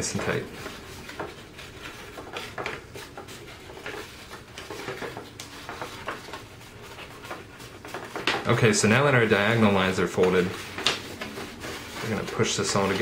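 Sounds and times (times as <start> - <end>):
cardstock rustling and crackling: 0.0 - 13.0.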